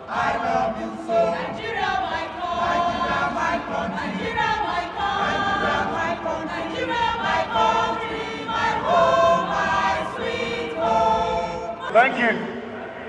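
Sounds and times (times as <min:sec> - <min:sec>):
choir singing: 0:00.0 - 0:13.0.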